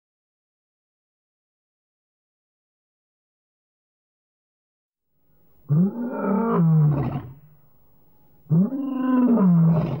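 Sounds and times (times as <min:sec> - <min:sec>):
lion roaring: 0:05.7 - 0:07.4, 0:08.5 - 0:10.0.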